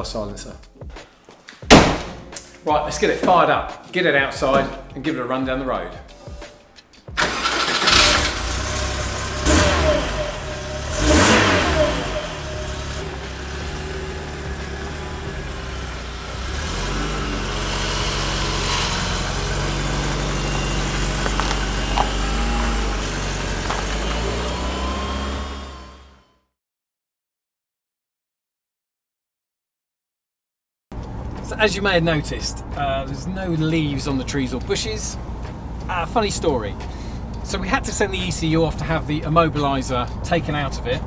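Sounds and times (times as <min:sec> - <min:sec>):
van engine starting and revving: 0:07.1 - 0:26.5, 0:30.9 - 0:41.0
engine idling: 0:07.2 - 0:26.2.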